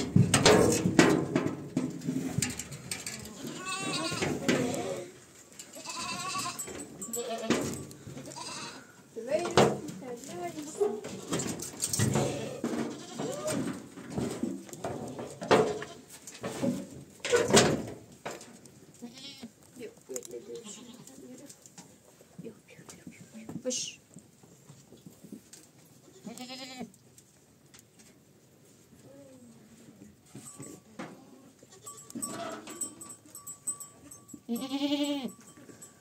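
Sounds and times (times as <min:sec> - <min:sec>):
goats bleating: 0:03.2 - 0:09.0, 0:12.1 - 0:13.6, 0:19.0 - 0:19.5, 0:20.3 - 0:21.2, 0:26.1 - 0:26.9, 0:31.7 - 0:33.0, 0:34.5 - 0:35.4.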